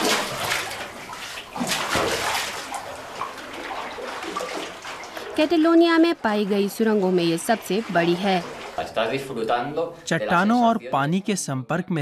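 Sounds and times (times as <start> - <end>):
water splashing and sloshing: 0.0 - 10.6.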